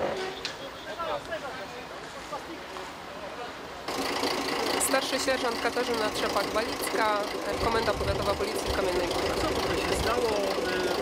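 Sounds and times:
distant voices: 0.0 - 11.0
engine idling: 3.9 - 11.0
woman speaking: 4.7 - 11.0.

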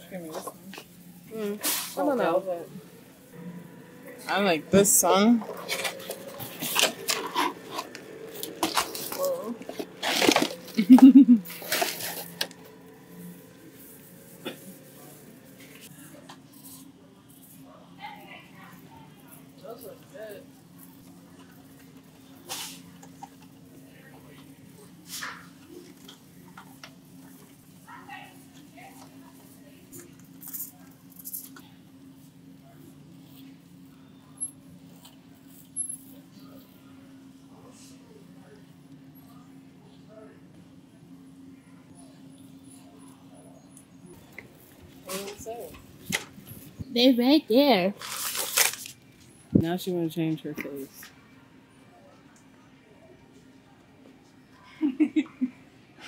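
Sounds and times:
distant voices: 0.0 - 49.6
store background hum: 0.0 - 56.0
cardboard packaging rustling: 5.6 - 12.5, 48.0 - 49.0.

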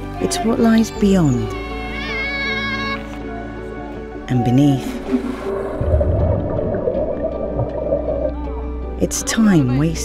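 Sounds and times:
background music: 0.0 - 10.0
muffled underwater plunge: 4.9 - 8.4
rush of bubbles: 5.0 - 8.4.

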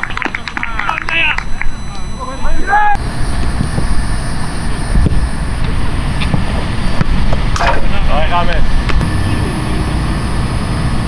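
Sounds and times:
voices: 0.0 - 6.6, 7.6 - 11.0
wind rumbling on microphone: 3.0 - 11.0.

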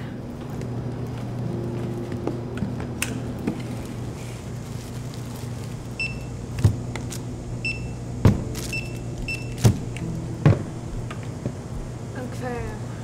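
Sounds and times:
steady low hum: 0.0 - 13.0
items knocking on counter: 8.2 - 8.6, 9.6 - 10.7
barcode scanner beeps: 8.7 - 9.9.

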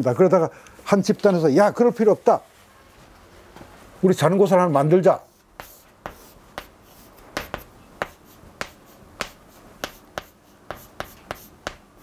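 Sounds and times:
chalk tapping on chalkboard: 5.3 - 12.0.

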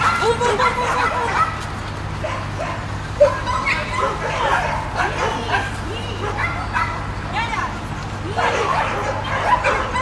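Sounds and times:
dog barking: 0.0 - 1.6, 2.2 - 7.1, 8.4 - 10.0.

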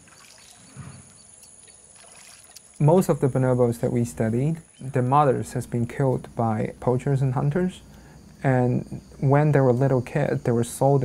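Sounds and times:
water splashing and trickling: 0.0 - 5.0.

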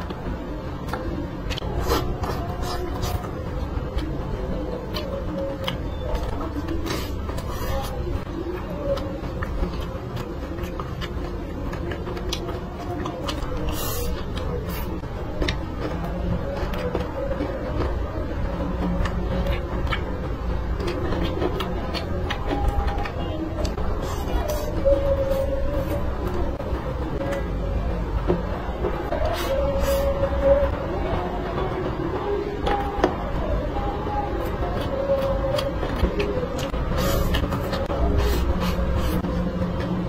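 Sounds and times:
steady low hum: 0.0 - 40.0
chewing and mouth sounds: 0.8 - 27.6, 34.2 - 40.0.

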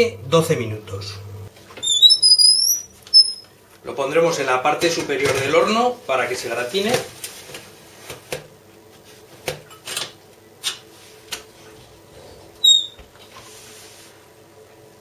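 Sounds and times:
oven door squeak and thump: 1.8 - 3.4, 12.6 - 13.1.

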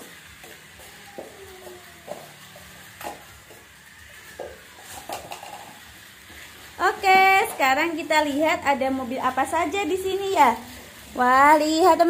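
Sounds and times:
toy cars whirring on track: 0.0 - 12.0.

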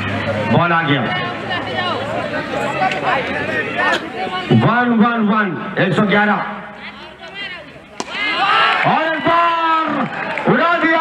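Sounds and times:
excited commentator speaking: 0.5 - 7.8, 8.4 - 11.0.

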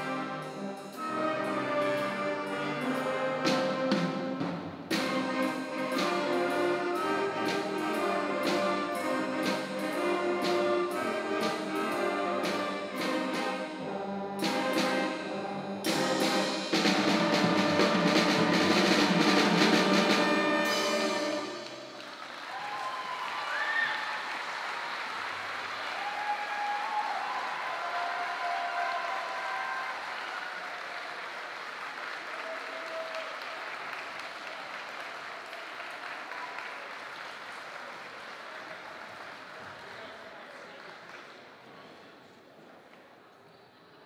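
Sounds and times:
drum and cymbal hits: 0.0 - 22.0
concert band playing: 0.0 - 22.4
audience applauding: 20.8 - 41.6.

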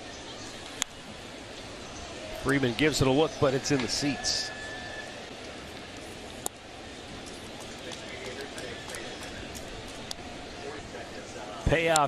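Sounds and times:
crowd hubbub: 0.0 - 11.8.

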